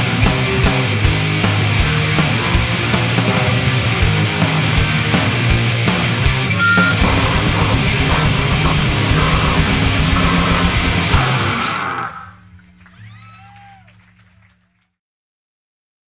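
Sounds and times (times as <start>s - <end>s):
grindcore band playing live: 0.0s - 13.0s.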